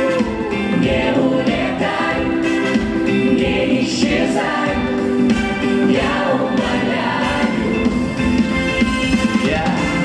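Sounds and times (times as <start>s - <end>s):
vocal ensemble singing in harmony: 0.0s - 8.4s.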